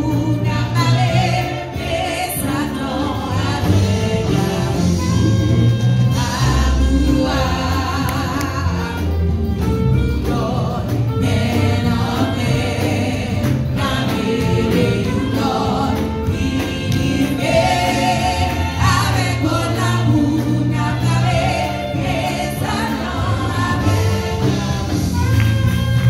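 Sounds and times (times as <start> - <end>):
women singing gospel: 0.0 - 25.7
keyboard accompaniment: 0.0 - 26.0.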